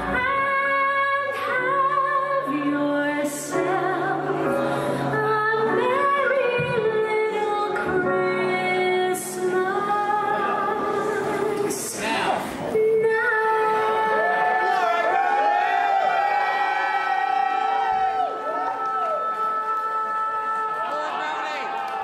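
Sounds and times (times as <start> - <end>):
audience cheering and whooping: 14.1 - 22.0.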